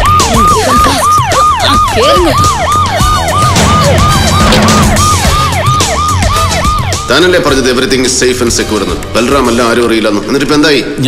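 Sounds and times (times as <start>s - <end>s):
police siren yelping: 0.0s - 7.6s
background music: 0.0s - 11.0s.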